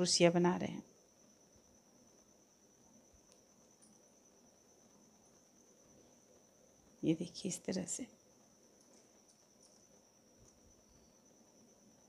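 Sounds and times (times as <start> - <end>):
faint high-pitched whine: 0.0 - 12.0
faint ticks: 3.2 - 4.0, 8.4 - 11.2.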